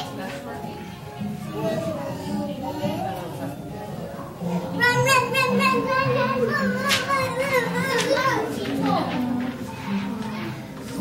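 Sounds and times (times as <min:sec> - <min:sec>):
young children talking: 0:00.0 - 0:11.0.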